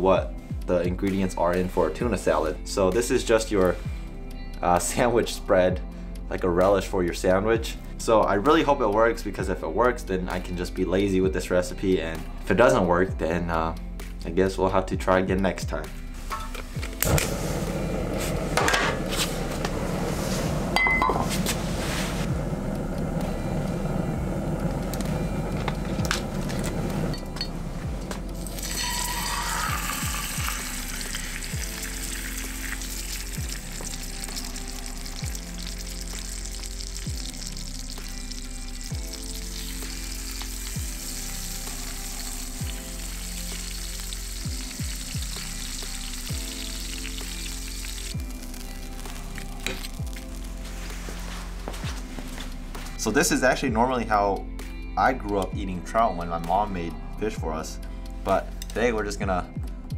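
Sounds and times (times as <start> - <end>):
background music: 0.0 - 59.9
gas burner flame rushing: 17.0 - 28.7
fish sizzling in oil: 28.4 - 51.6.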